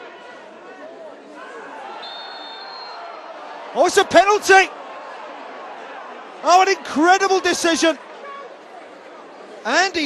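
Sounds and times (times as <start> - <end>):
stadium crowd murmuring: 0.0 - 10.0
referee's whistle blast: 2.0 - 3.1.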